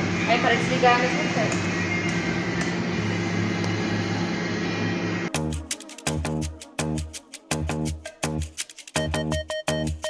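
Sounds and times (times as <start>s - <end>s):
cooling fans humming: 0.0s - 10.0s
upbeat electronic music: 5.3s - 10.0s.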